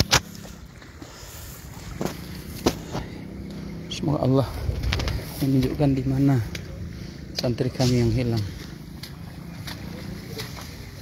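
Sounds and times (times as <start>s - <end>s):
wind on phone microphone: 4.4s - 5.8s.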